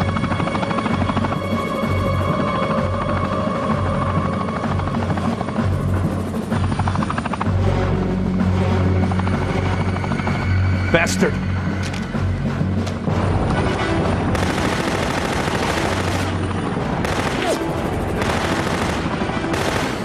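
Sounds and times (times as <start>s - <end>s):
film score music: 0.0s - 20.0s
helicopter rotor chopping: 0.0s - 20.0s.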